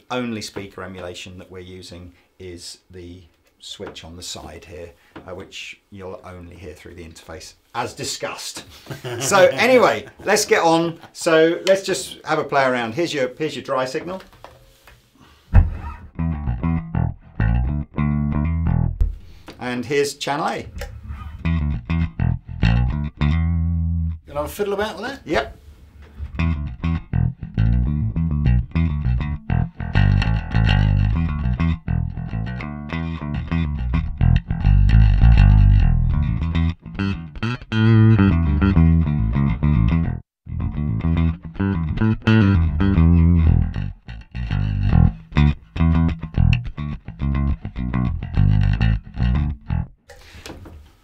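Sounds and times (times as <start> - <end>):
electric bass guitar: 15.5 - 19.5, 20.6 - 24.6, 25.4 - 50.4.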